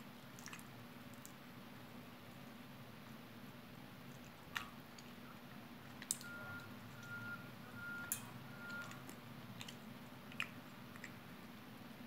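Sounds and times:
faint electronic beeps: 0:06.2 - 0:09.0.

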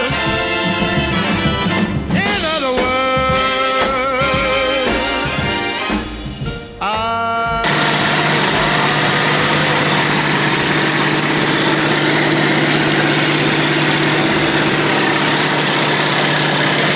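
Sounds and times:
low hum: 0:07.7 - 0:16.9
propeller plane engine drone: 0:07.7 - 0:16.9
rushing airflow: 0:07.7 - 0:16.9.

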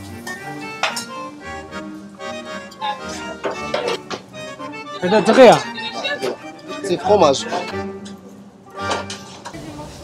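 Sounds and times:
accordion music: 0:00.0 - 0:09.5.

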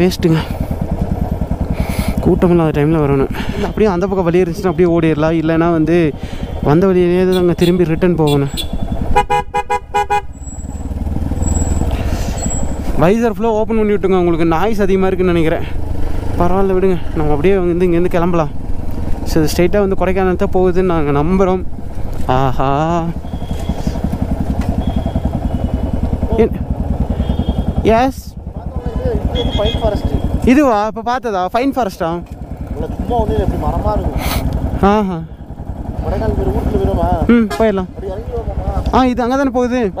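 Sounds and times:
voices: 0:00.0 - 0:08.8, 0:19.2 - 0:40.0
motorcycle engine rumbling: 0:00.0 - 0:40.0.

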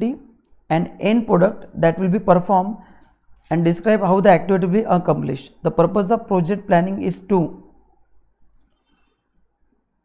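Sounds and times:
man speaking: 0:00.0 - 0:02.8, 0:03.5 - 0:07.7.

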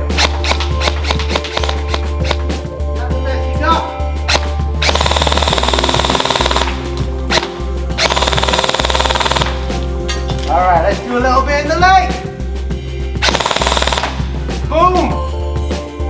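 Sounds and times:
background music: 0:00.0 - 0:16.0
airsoft gun firing full auto: 0:00.2 - 0:02.4, 0:04.3 - 0:09.6, 0:13.2 - 0:14.2.

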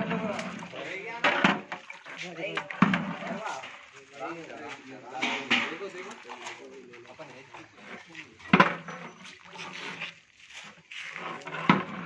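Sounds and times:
people talking: 0:00.0 - 0:01.5, 0:02.1 - 0:10.1.

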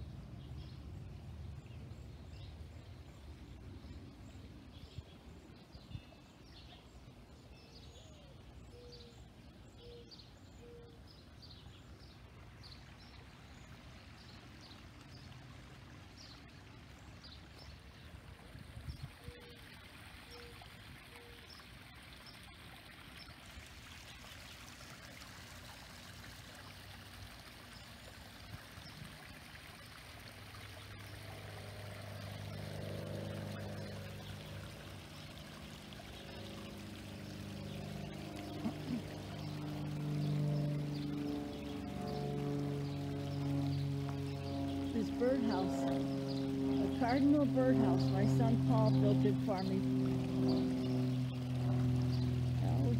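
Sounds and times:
waterfall splashing into pond: 0:11.4 - 0:52.9.

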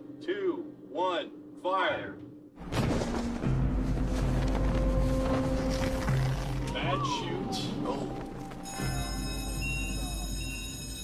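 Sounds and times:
music with low held notes: 0:00.0 - 0:11.0.

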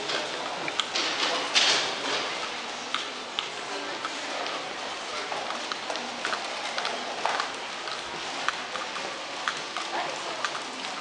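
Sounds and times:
indoor hall background noise: 0:00.0 - 0:11.0.

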